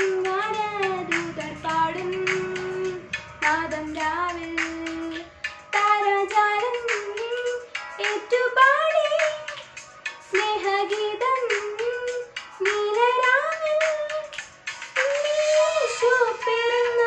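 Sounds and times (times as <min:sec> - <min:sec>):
girl singing a carol: 0:00.0 - 0:09.6, 0:10.3 - 0:14.3, 0:15.1 - 0:17.0
instrumental backing track: 0:00.0 - 0:17.0.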